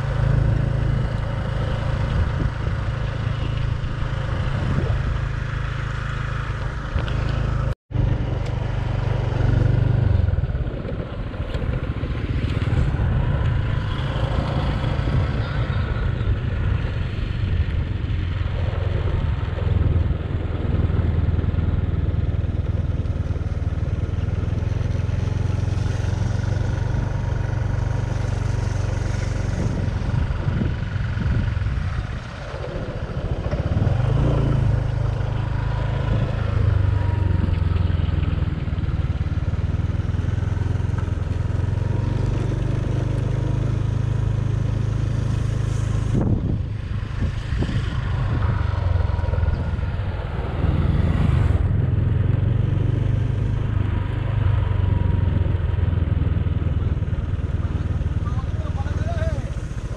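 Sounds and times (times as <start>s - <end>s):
small motorbike engine running: 0.0s - 59.9s
wind rumbling on microphone: 0.0s - 59.9s.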